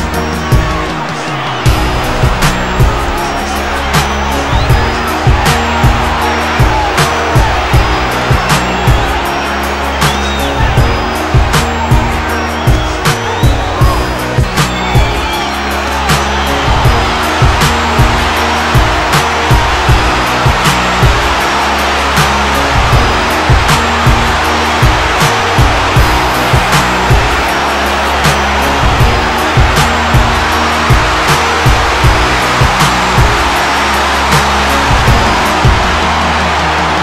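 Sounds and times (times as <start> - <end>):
low bass notes: 0.0 - 12.3
music with steady beat: 0.0 - 37.0.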